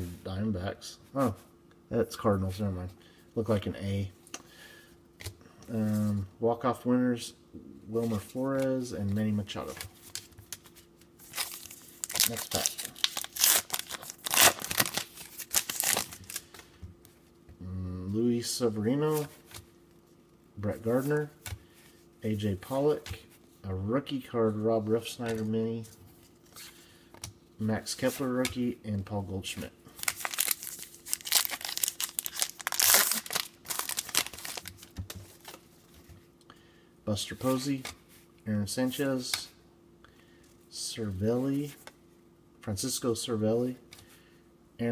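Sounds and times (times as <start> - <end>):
plastic wrapper crinkling: 11.2 - 16.5, 30.0 - 35.6.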